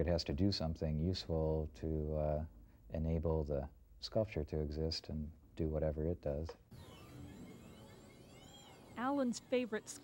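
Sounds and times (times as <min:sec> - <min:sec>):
electric motor whine: 0:06.7 - 0:10.0.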